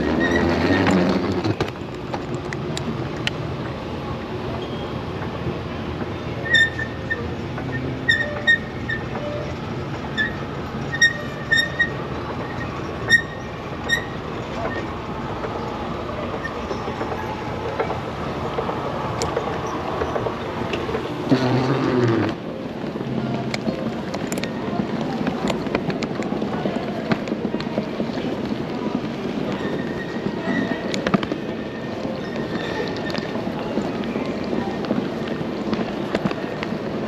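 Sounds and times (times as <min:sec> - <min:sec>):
short high squeaks: 0:00.0 - 0:01.6, 0:04.6 - 0:05.0, 0:06.4 - 0:15.0.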